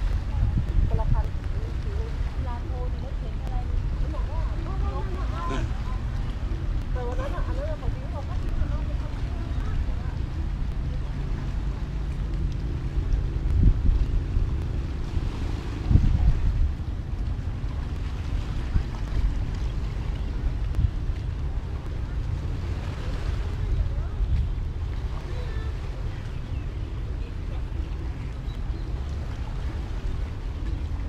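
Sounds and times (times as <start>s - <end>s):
engine humming: 0.0s - 31.0s
wind buffeting microphone: 0.0s - 31.0s.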